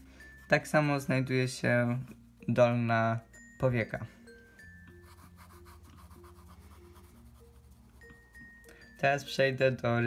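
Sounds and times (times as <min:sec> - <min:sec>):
soft background music: 0:00.0 - 0:10.0
pencil scratching on paper: 0:05.0 - 0:08.4.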